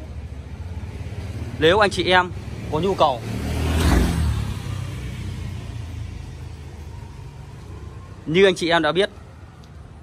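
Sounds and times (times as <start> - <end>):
passing road vehicle rumble: 0.0 - 10.0.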